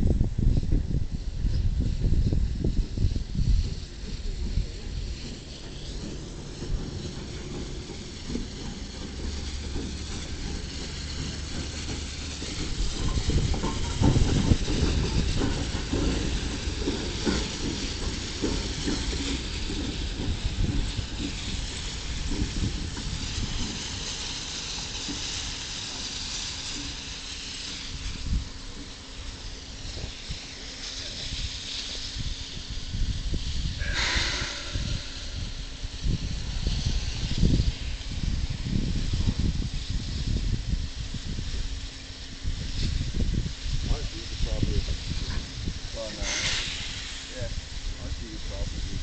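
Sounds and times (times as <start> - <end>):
steam locomotive hissing: 0.0 - 49.0
low rumbling: 31.4 - 41.4.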